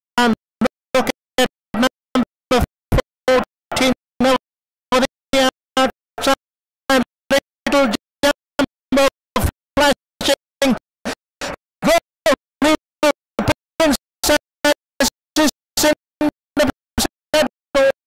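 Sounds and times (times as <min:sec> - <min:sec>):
stuttering raised voice: 0:00.2 - 0:18.0.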